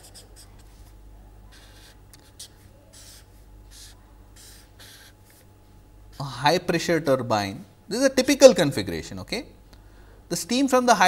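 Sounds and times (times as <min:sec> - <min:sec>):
marker writing on paper: 0:00.0 - 0:05.5.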